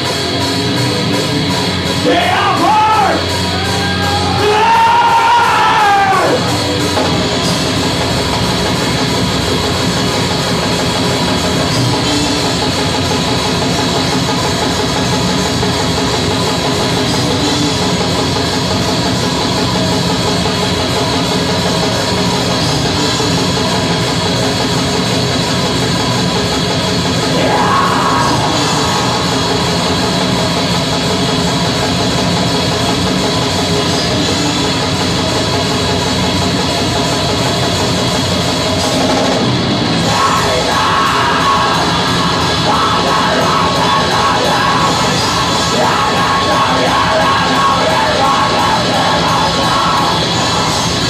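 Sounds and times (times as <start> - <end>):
bass guitar: 0.0 - 51.0
distorted electric guitars: 0.0 - 51.0
fast drum kit: 0.0 - 51.0
screamed vocal: 2.1 - 6.5, 27.3 - 29.8.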